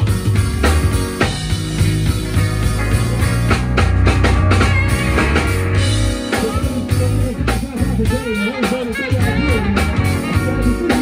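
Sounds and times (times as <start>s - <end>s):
deep bass line: 0.0s - 11.0s
drum kit: 0.0s - 11.0s
electric guitar: 0.0s - 11.0s
keyboard: 0.0s - 11.0s
pitch-bending lead line: 0.0s - 11.0s.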